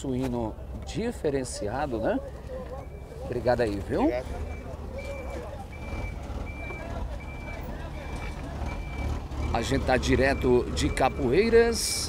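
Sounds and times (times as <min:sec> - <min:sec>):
truck engine rumble: 0:00.0 - 0:12.0
reversing alarm beeping: 0:02.0 - 0:12.0.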